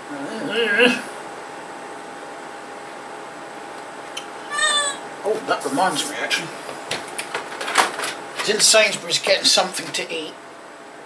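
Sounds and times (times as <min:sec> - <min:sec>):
faint background hum: 0:00.0 - 0:11.0
high meow-like call: 0:04.5 - 0:05.0.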